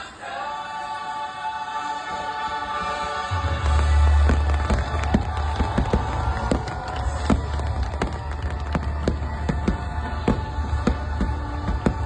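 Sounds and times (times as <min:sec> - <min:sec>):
choir singing held chords: 0:00.0 - 0:12.0
fireworks booming and cracking: 0:03.7 - 0:12.0.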